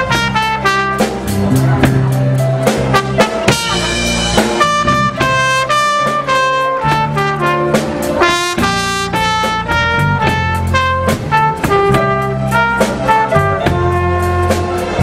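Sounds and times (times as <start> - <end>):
bass line: 0.0 - 15.0
light drums: 0.0 - 15.0
trumpet melody: 0.0 - 15.0.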